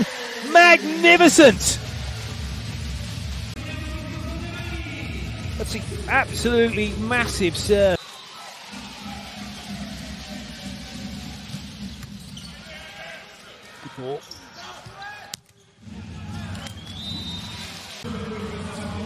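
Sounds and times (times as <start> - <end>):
crowd noise: 0.0 - 19.0.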